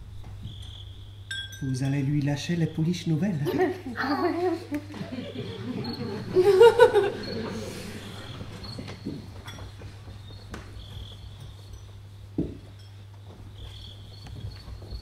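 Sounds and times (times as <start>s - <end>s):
crickets chirping: 0.0s - 15.0s
women laughing: 3.3s - 8.6s.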